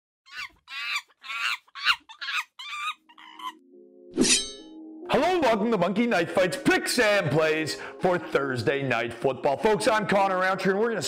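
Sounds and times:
high-pitched animal calls: 0.3s - 3.6s.

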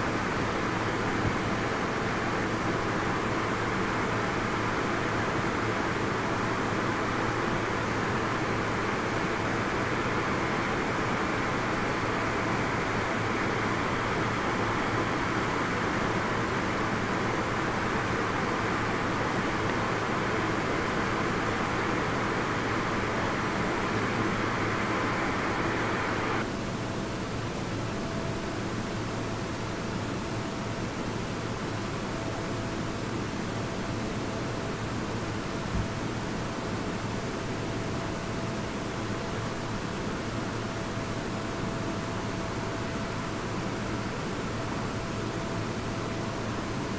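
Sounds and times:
faint steady whine: 0.0s - 46.9s
jet engine hiss: 10.5s - 26.4s.

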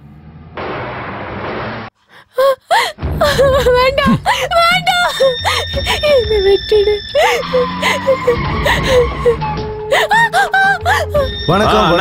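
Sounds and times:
woman wailing: 2.3s - 11.3s.

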